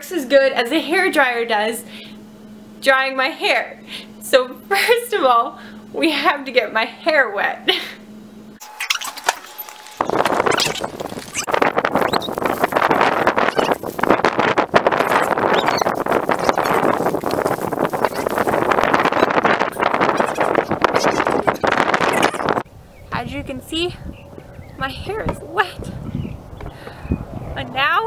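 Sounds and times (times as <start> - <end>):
hose water splashing: 14.9 - 19.8.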